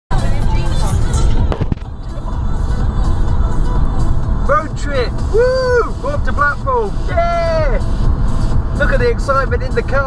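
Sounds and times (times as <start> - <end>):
car road and wind rumble: 0.1 - 10.0.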